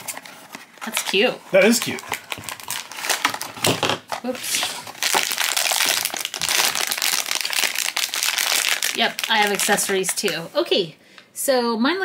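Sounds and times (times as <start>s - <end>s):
foil pouch crinkling: 0.0s - 10.5s.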